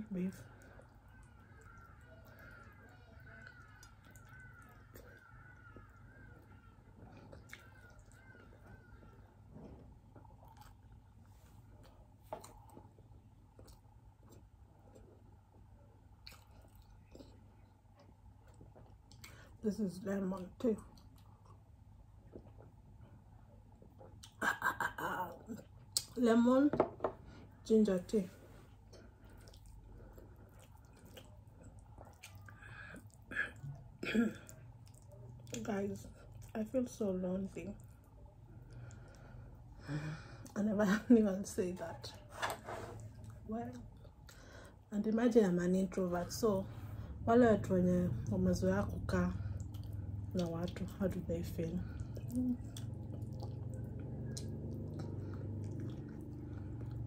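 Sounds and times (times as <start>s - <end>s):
soft chewing: 0.2s - 26.2s, 27.0s - 57.0s
wet eating sounds: 0.3s - 19.6s, 20.2s - 26.2s, 28.4s - 57.0s.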